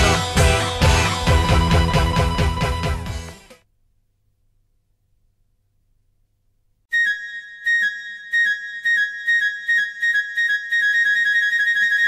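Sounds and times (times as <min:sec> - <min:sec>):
song with high-pitched note: 0:06.9 - 0:12.0.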